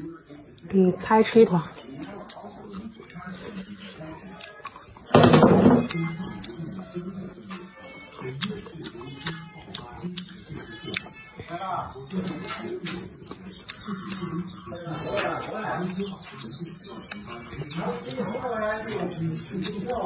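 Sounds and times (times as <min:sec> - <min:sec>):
person chewing food: 0:01.7 - 0:05.1, 0:05.8 - 0:20.0
wet mouth clicks and smacks: 0:19.5 - 0:20.0.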